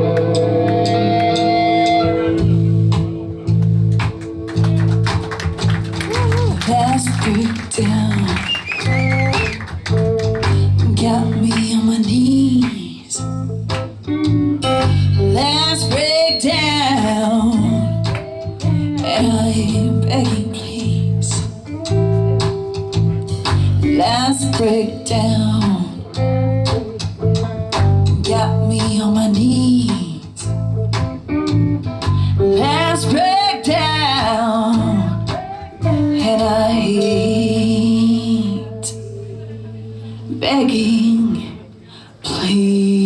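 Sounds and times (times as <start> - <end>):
hard rock band playing: 0.0 - 11.6, 13.1 - 20.4, 21.2 - 28.5, 30.4 - 37.3
bass guitar low chunky notes: 0.0 - 41.6
lead guitar with vibrato: 0.0 - 41.8.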